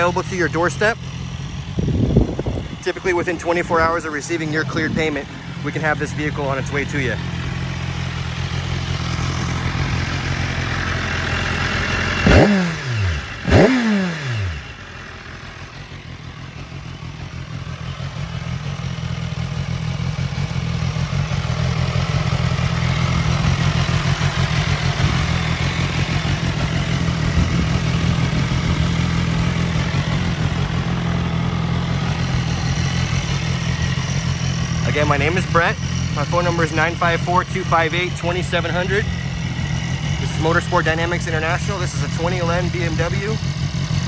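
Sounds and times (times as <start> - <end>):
motorcycle engine revving and idling: 0.0 - 44.0.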